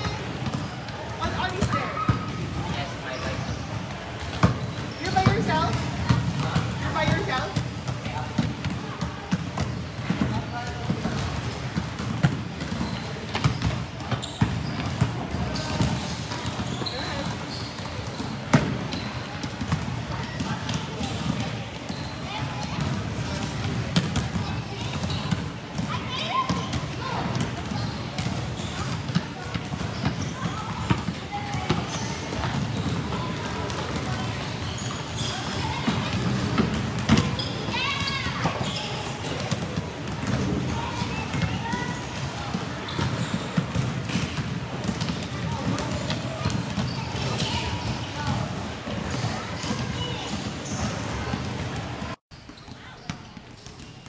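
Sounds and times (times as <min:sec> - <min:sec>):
basketballs bouncing on concrete: 0:00.0 - 0:54.0.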